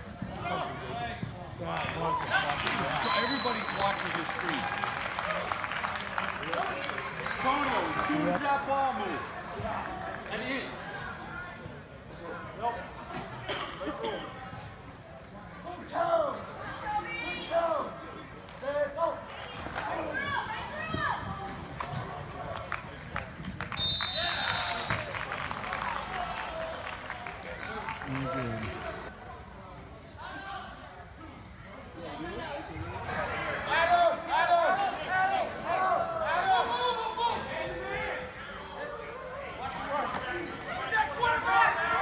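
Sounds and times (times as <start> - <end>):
high whistle blast: 3.0 - 3.8, 23.8 - 24.9
crowd shouting in a hall: 33.1 - 42.0.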